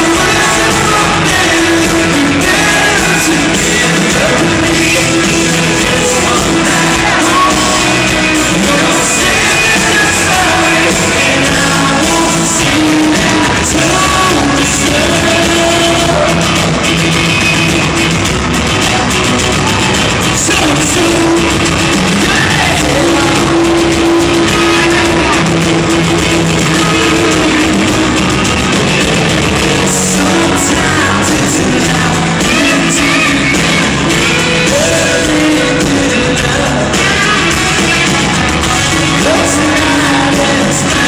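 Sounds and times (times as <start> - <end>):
male lead vocal: 0.0 - 17.9, 19.8 - 41.0
live country-rock band: 0.0 - 41.0.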